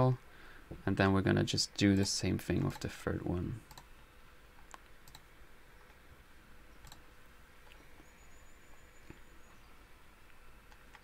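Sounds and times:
computer mouse clicks: 0:03.7 - 0:03.9, 0:04.6 - 0:06.0, 0:06.8 - 0:07.0.

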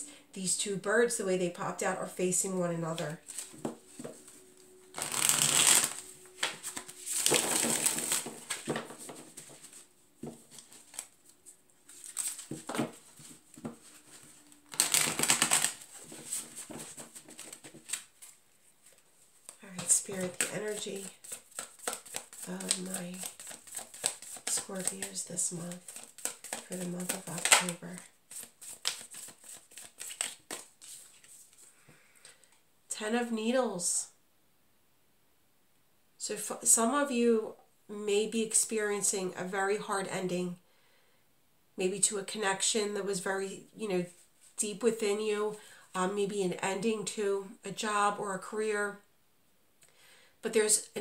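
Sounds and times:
cards being shuffled: 0:03.0 - 0:31.7.

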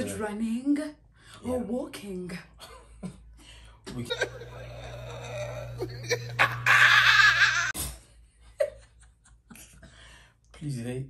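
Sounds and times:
loud laughter: 0:04.1 - 0:07.8.

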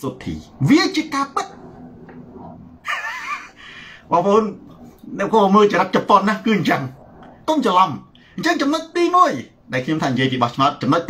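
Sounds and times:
man talking: 0:00.0 - 0:01.6, 0:03.8 - 0:11.0
high-pitched laugh: 0:02.8 - 0:03.6.

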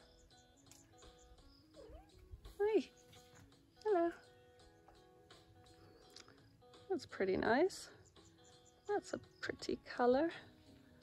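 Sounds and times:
cat meowing: 0:01.8 - 0:02.2.

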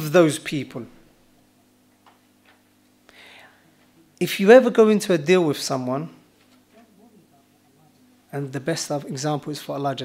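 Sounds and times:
faint low hum: 0:00.0 - 0:10.0.

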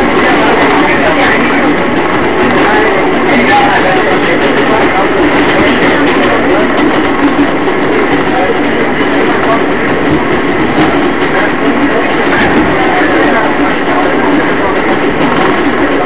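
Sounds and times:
subway car rumble of wheels: 0:00.0 - 0:16.0.

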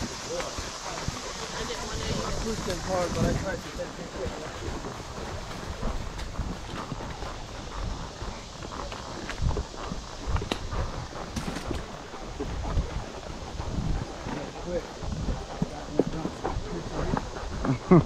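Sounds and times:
horse hooves on dirt trail: 0:00.0 - 0:18.0.

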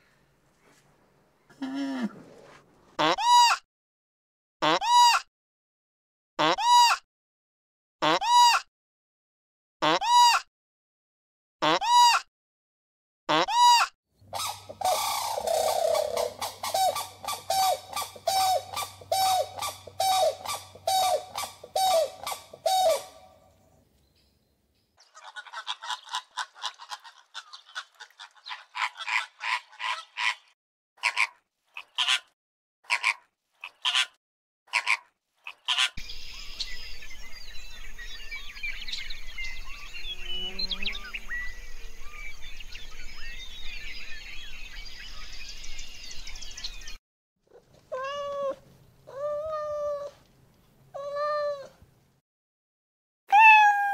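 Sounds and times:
bird calls: 0:14.3 - 0:24.4, 0:35.5 - 0:47.0
many small birds chirping: 0:36.0 - 0:47.0.

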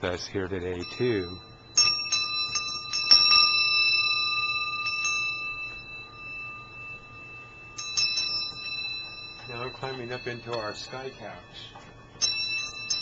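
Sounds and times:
small cymbals ringing: 0:00.0 - 0:13.0.

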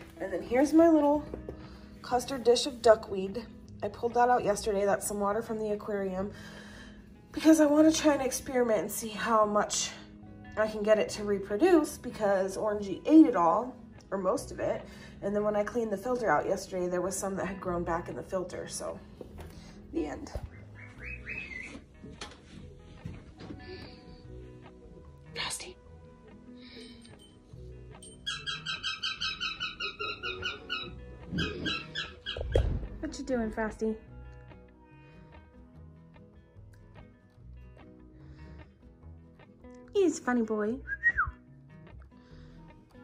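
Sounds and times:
soft background music: 0:00.0 - 0:43.0
bird chirping: 0:20.5 - 0:21.8, 0:28.2 - 0:32.6.

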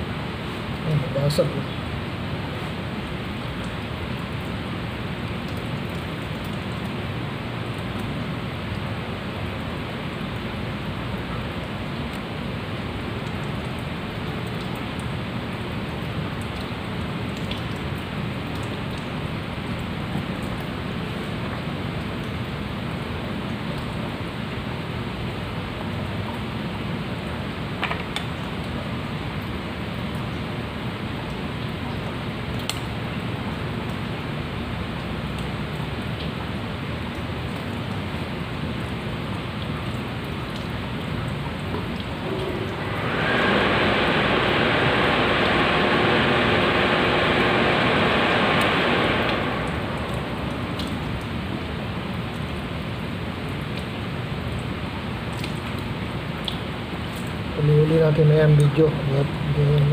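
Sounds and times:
steady rushing hiss: 0:42.2 - 0:52.4.

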